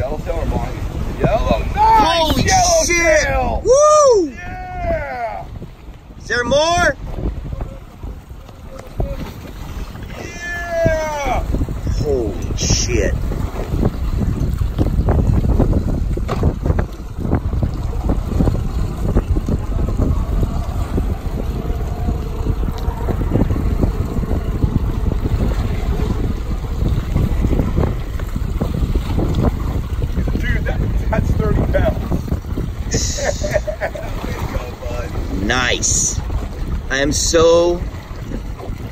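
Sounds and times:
waves splashing against boat: 0:00.0 - 0:38.9
wind buffeting microphone: 0:00.0 - 0:38.9.

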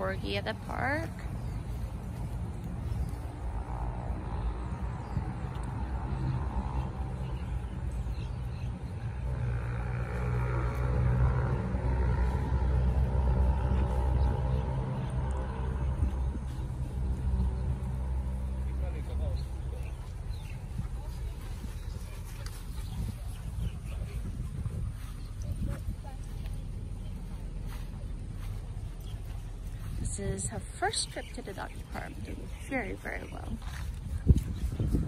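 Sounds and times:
vehicle engine running: 0:00.0 - 0:35.0.

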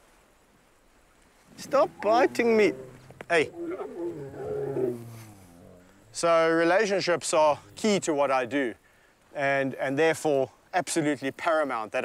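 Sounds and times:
lion growling low: 0:01.5 - 0:08.2.

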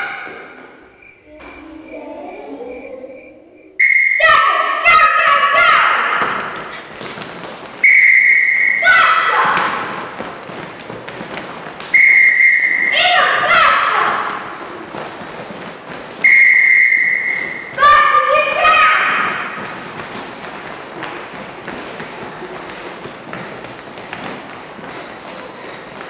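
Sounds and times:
children calling out: 0:00.0 - 0:07.0, 0:08.3 - 0:10.2, 0:12.5 - 0:14.9, 0:16.6 - 0:19.6
whistle blasts: 0:03.2 - 0:04.8, 0:07.8 - 0:09.2, 0:11.9 - 0:13.6, 0:16.2 - 0:17.8
feet thudding on hall floor: 0:06.1 - 0:12.3, 0:18.6 - 0:26.0.

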